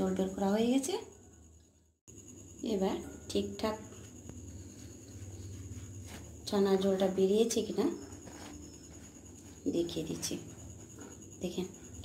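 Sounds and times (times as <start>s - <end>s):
damp cloth rustling: 4.6s - 6.7s.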